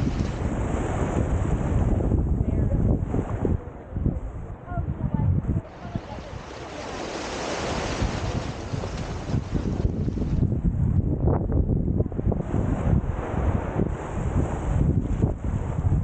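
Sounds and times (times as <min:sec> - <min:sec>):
small waves washing on shore: 0:00.0 - 0:10.7
wind buffeting microphone: 0:00.0 - 0:16.0.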